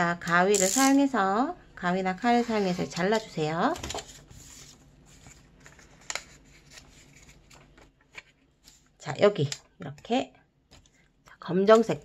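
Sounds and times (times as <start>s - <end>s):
paper rustling: 2.5s - 8.9s.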